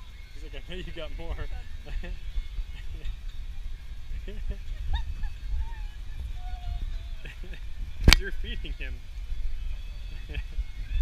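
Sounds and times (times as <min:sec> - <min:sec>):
faint voices: 0:00.0 - 0:11.0
low rumble: 0:00.0 - 0:11.0.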